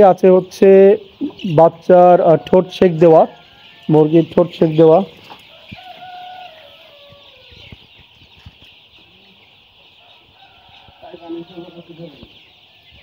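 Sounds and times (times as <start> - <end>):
chicks peeping: 0.0 - 13.0.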